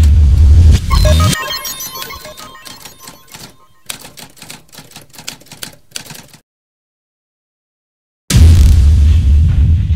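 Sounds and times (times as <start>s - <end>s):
typewriter key clicks: 2.8s - 6.4s.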